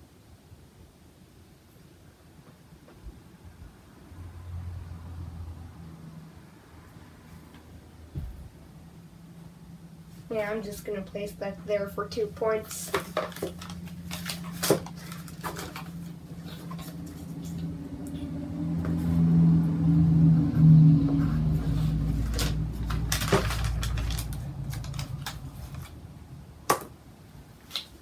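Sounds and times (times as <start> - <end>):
low hum deepening into rumble: 16.5 - 26.6.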